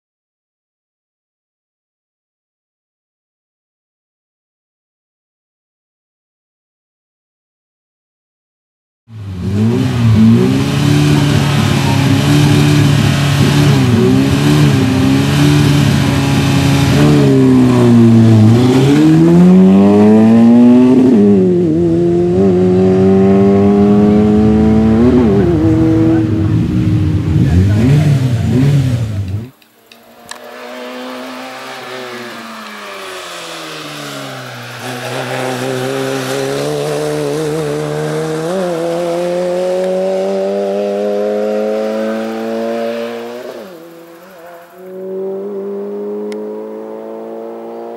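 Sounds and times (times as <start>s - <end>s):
race car engine revving: 9.1s - 47.9s.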